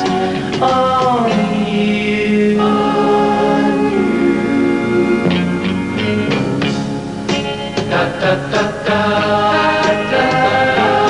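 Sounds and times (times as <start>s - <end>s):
band backing music: 0.0s - 11.0s
vocal harmony singing: 0.0s - 11.0s.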